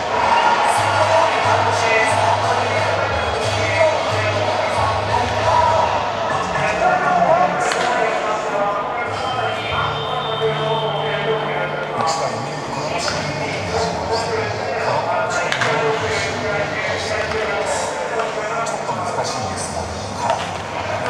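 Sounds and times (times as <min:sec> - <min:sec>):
echoing voices: 0:00.0 - 0:21.0
music echoing in stadium: 0:00.0 - 0:21.0.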